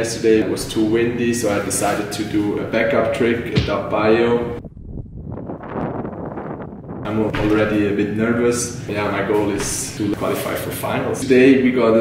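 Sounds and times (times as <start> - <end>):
wind buffeting microphone: 3.6 - 8.2.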